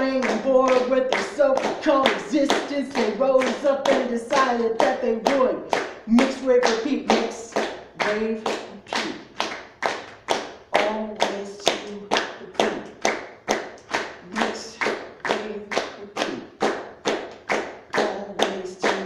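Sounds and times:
audience clapping in unison: 0.0s - 19.0s.

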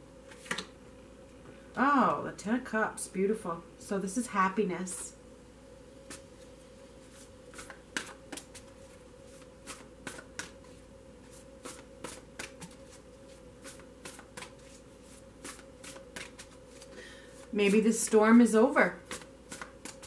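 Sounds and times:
faint steady hum: 0.0s - 20.0s
cards being shuffled: 7.1s - 17.5s, 19.1s - 20.0s.

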